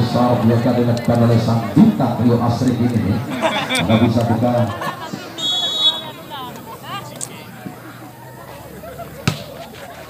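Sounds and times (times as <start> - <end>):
faint crowd voices: 0.0 - 10.0
volleyball smacked by hand: 9.2 - 9.5.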